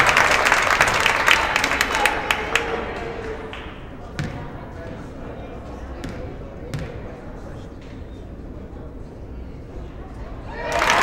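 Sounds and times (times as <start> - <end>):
murmur of crowd voices: 0.0 - 11.0
basketball bouncing on wooden floor: 4.2 - 4.4.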